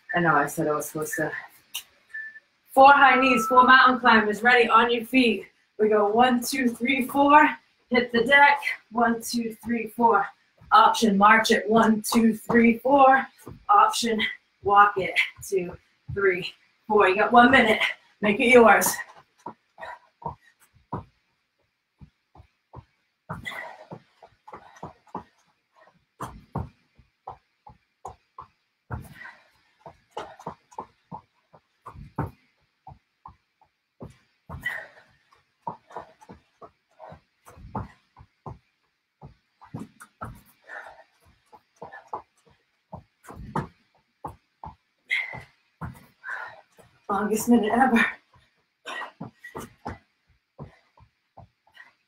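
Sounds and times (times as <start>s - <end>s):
feet thudding on a floor mat: 18.9s - 21.2s, 22.0s - 52.0s
heavy breathing: 19.8s - 20.6s, 23.3s - 25.9s, 29.0s - 30.7s, 34.5s - 38.0s, 39.7s - 42.6s, 45.1s - 47.1s.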